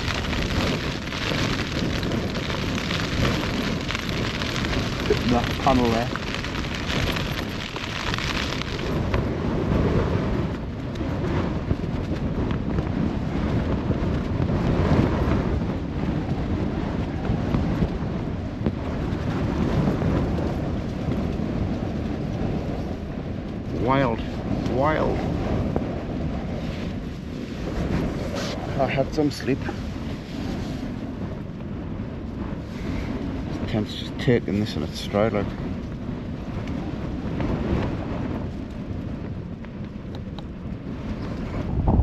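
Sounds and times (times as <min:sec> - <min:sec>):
storm wind gusting against tent: 0:00.0 - 0:42.0.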